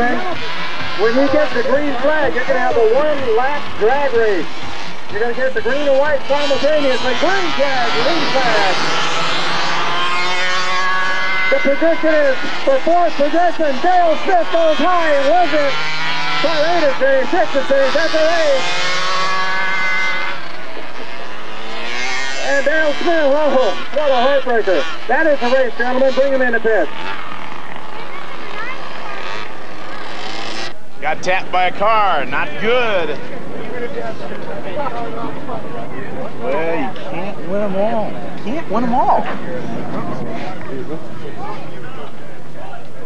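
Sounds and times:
faint voices: 0.0s - 10.0s, 30.9s - 43.0s
small two-stroke engines buzzing: 0.0s - 43.0s.

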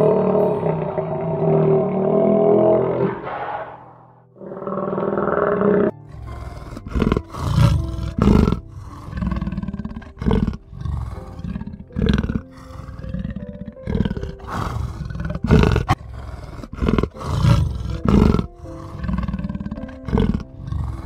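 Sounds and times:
soft background music: 0.0s - 3.4s, 4.1s - 21.0s
lion roaring: 0.0s - 21.0s.

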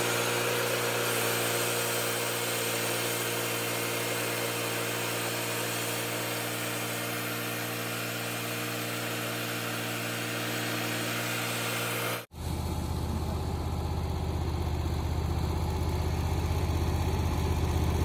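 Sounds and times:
band saw blade cutting log: 0.0s - 12.3s
gas engine running under load: 0.0s - 18.0s.

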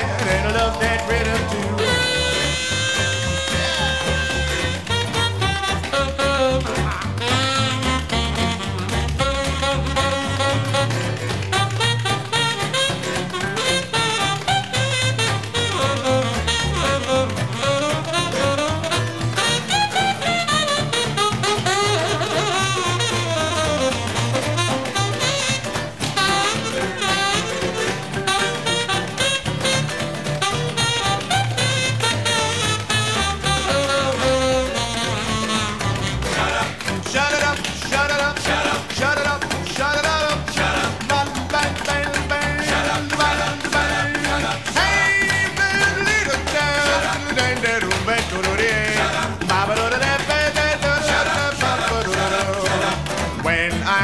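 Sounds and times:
held high note: 0.0s - 36.8s
guitar: 0.0s - 54.0s
uptempo swing music: 0.0s - 54.0s.

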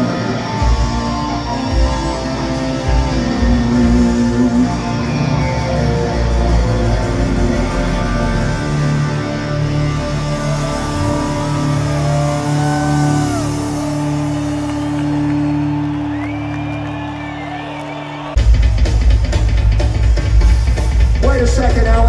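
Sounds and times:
electric guitar bending notes: 0.0s - 14.6s.

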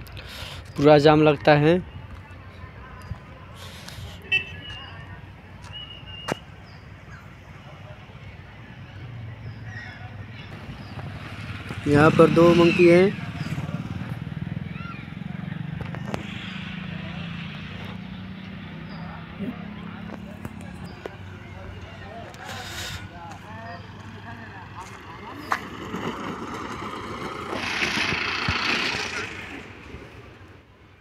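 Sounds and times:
motorcycle passing by: 8.6s - 31.0s.

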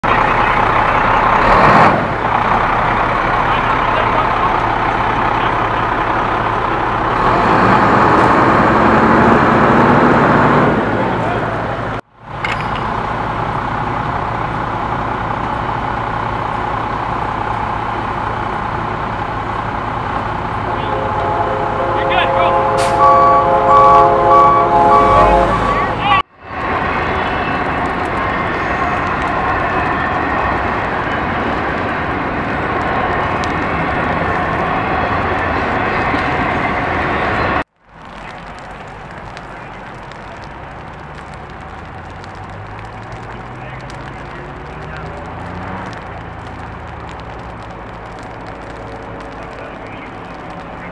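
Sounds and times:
vehicle engine noise: 0.0s - 50.9s.

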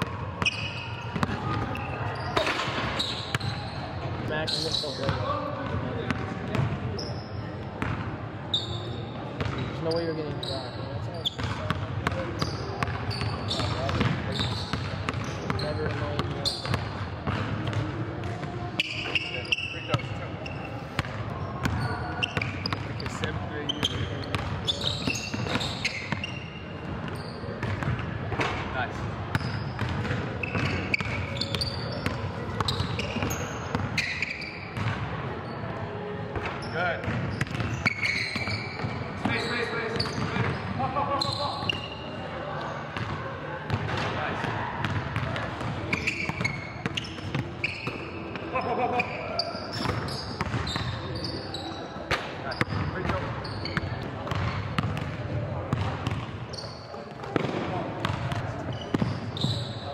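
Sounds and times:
sneaker squeaks: 0.0s - 59.9s
basketball bouncing on hardwood floor: 53.8s - 56.3s.

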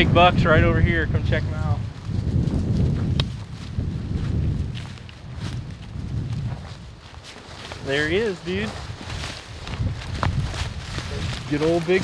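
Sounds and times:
low rumble on microphone: 0.0s - 12.0s
footsteps through dry leaves: 1.8s - 12.0s
twig snapping: 3.1s - 3.4s.

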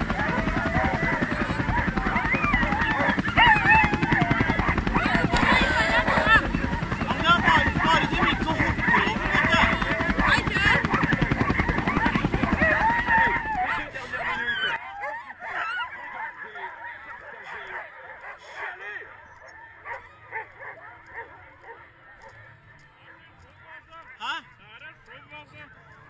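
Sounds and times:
sled dogs yelping and barking: 0.0s - 26.0s.

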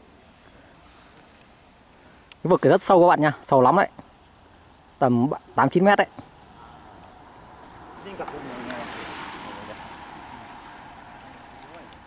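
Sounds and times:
soft rustle: 0.0s - 3.0s
faint outdoor hiss: 0.0s - 12.0s.

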